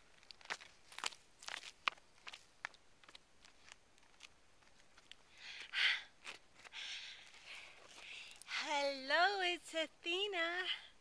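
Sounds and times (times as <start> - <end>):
footsteps scuffing on rock: 0.2 - 5.2.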